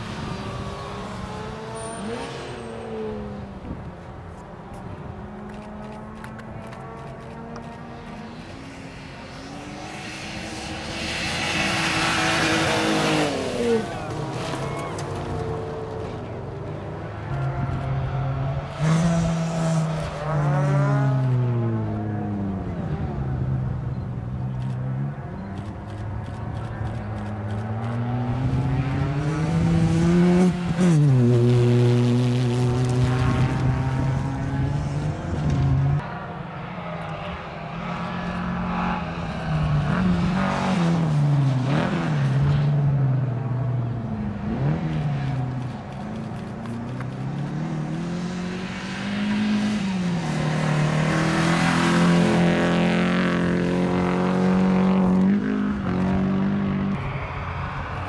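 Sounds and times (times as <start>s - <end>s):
rally car engines revving: 0.0s - 58.0s.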